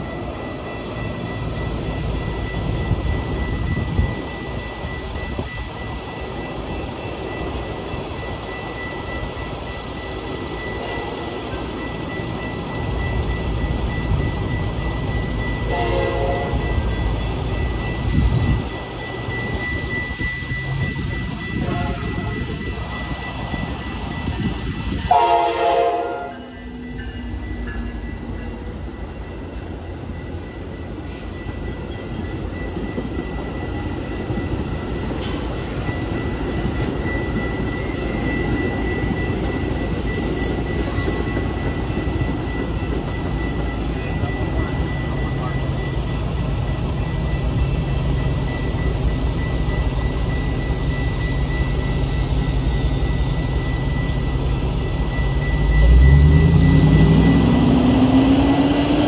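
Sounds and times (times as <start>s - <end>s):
crossing warning bell ringing: 0.0s - 59.0s
train coaches rumbling by: 0.0s - 59.0s
train horn blast: 15.7s - 16.7s, 21.6s - 22.2s, 25.1s - 26.5s.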